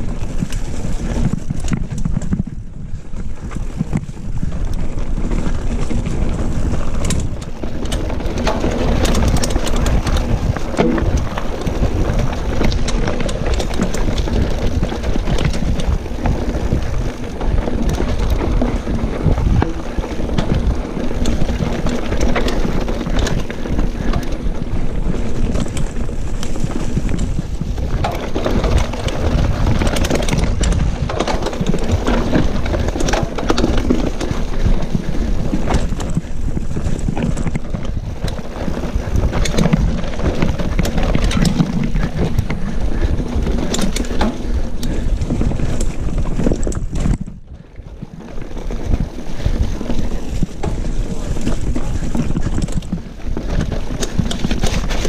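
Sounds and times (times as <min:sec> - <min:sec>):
bike rattling with sharp clicks: 0:00.0 - 0:55.0
tyres rolling over dirt: 0:00.0 - 0:55.0
wind rushing over microphone: 0:00.0 - 0:55.0.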